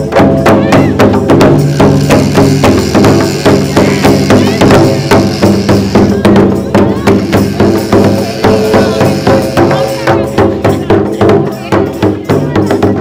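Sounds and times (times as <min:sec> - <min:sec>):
barrel drum beating fast rhythm: 0:00.0 - 0:13.0
held pitched notes: 0:01.6 - 0:10.3.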